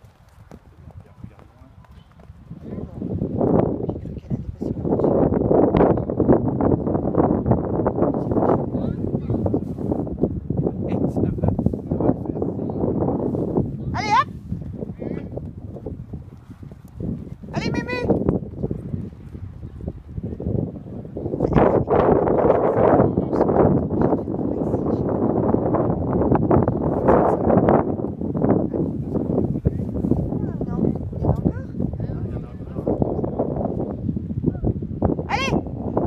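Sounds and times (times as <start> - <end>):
hooves thudding on sand: 0.0 - 3.7, 13.2 - 17.5.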